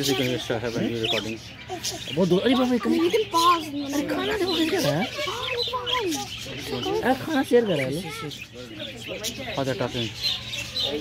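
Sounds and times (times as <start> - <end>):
budgerigars chirping: 0.0 - 11.0.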